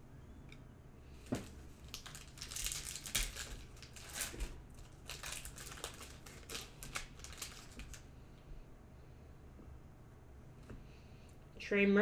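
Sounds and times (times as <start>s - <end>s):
cards and foil wrapper rustling: 1.3s - 8.1s.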